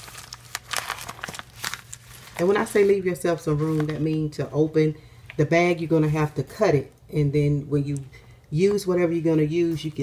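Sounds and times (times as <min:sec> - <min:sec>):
plastic bag crinkling: 0:00.0 - 0:04.5.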